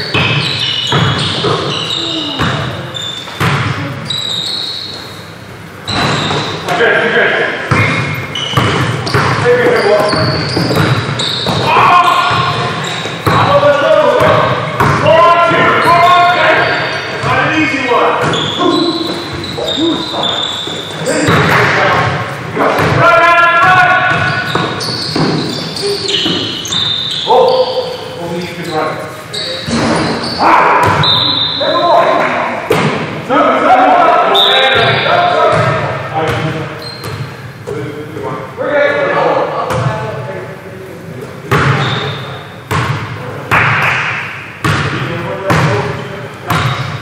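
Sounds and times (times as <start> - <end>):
players calling out: 0.0 - 37.6
basketball bouncing on wooden floor: 0.1 - 1.8, 3.3 - 3.8, 7.7 - 11.7, 24.1 - 26.6, 46.5 - 47.0.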